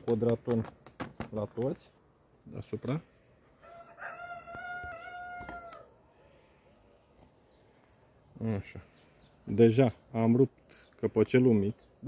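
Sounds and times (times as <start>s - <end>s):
rooster crowing: 3.6s - 6.0s.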